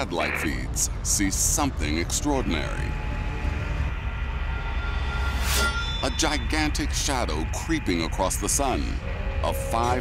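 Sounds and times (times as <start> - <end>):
deep rumbling drone: 0.0 - 10.0
faint sustained tones: 2.6 - 10.0.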